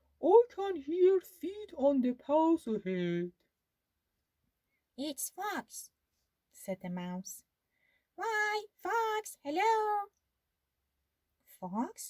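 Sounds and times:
woman reading in character voice: 0.2 - 3.4, 5.0 - 7.5, 8.2 - 10.2, 11.5 - 12.0.

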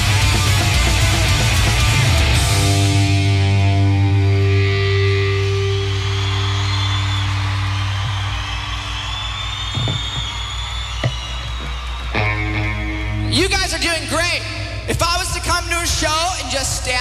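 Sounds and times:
electric guitar and bass chord: 0.0 - 7.0
low amplifier hum: 2.0 - 14.9
crowd cheering and whooping: 4.5 - 13.3.

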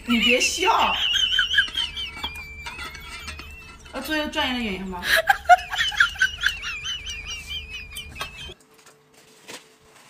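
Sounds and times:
high-pitched giggling laughter: 0.1 - 4.0, 5.0 - 8.6
wavering squeal: 1.0 - 4.0.

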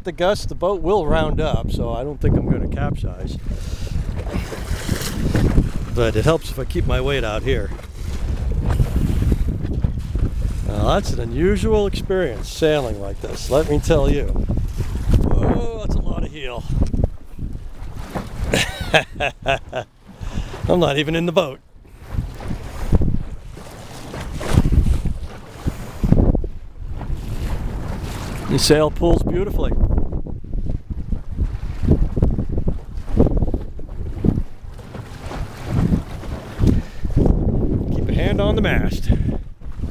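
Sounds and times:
water rushing along a hull: 0.0 - 39.9
wind buffeting microphone: 0.0 - 39.9.

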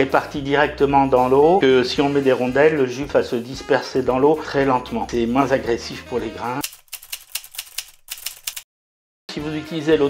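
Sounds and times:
typewriter key clicks: 6.6 - 8.6.

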